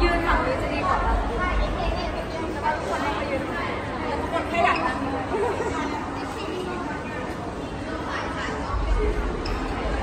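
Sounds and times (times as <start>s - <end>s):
people talking and chattering: 0.0s - 10.0s.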